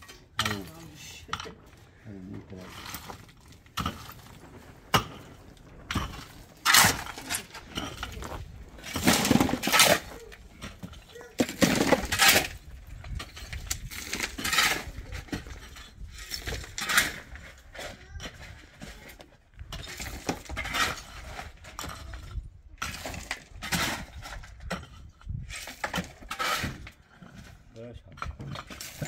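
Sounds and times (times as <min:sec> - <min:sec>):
stones clattering: 0:00.0 - 0:17.4
shovels scraping rubble: 0:00.0 - 0:29.0.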